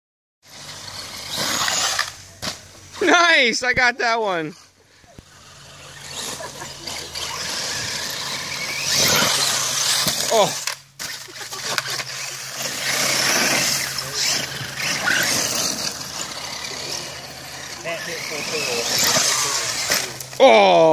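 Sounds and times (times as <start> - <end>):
toy truck driving over gravel: 0.4 - 3.3, 4.4 - 20.8.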